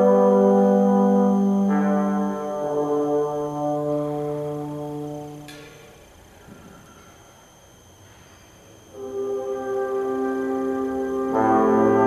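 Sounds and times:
brass choir sustained chord: 8.9s - 12.0s.

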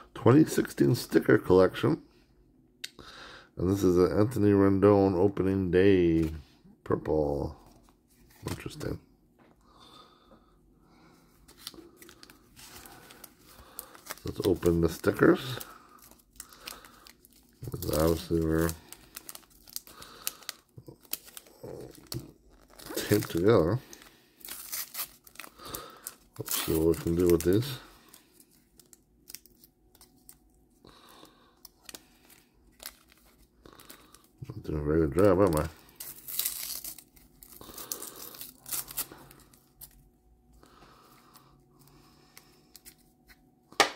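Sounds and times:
wrapper rustling: 11.4s - 34.4s, 35.1s - 40.1s.

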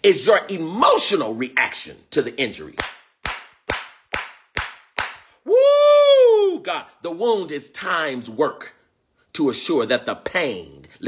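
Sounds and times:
man clapping hands: 2.8s - 5.4s
man's drawn-out vocal exclamation: 5.4s - 7.0s.

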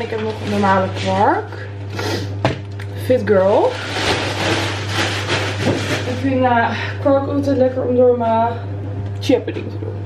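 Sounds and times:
plastic packaging crinkling: 0.0s - 1.6s, 3.4s - 6.4s
low electrical hum: 0.0s - 10.0s.

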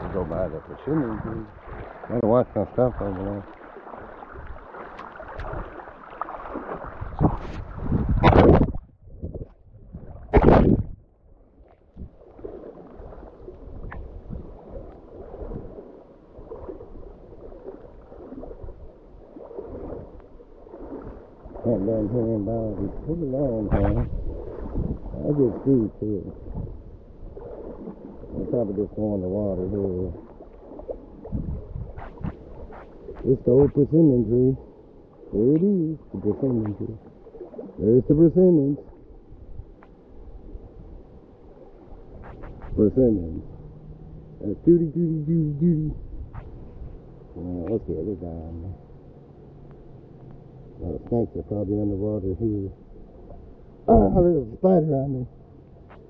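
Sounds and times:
water sloshing and gurgling: 0.0s - 56.0s.

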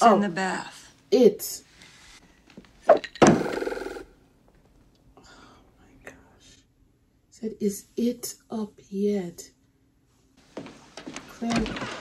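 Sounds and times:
faint whispered voice: 5.8s - 6.7s.

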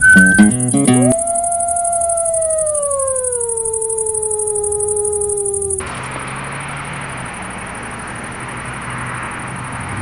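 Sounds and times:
long howl: 0.8s - 5.9s.

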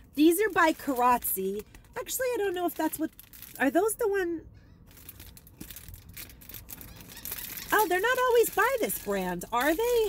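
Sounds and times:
plastic wrap crinkling: 0.1s - 4.0s, 4.8s - 10.0s.

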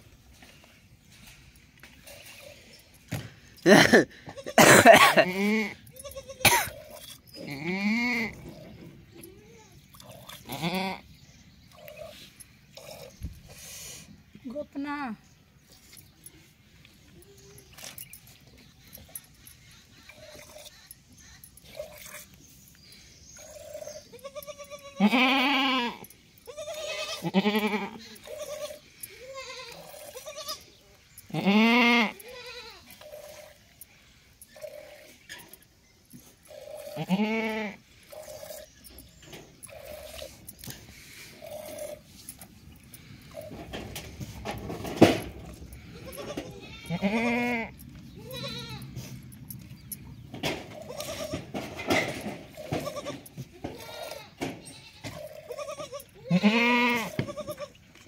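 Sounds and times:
goats bleating: 3.7s - 8.6s, 10.4s - 11.1s, 23.6s - 33.4s, 36.6s - 37.8s, 45.0s - 49.2s, 50.7s - 57.9s.

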